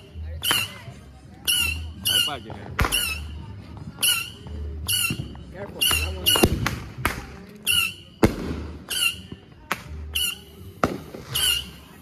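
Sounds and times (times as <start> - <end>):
high squawking call: 0.0 - 6.5, 7.6 - 8.2, 8.8 - 9.3, 10.1 - 10.7, 11.3 - 12.0
fireworks cracking: 2.0 - 4.3, 4.9 - 12.0.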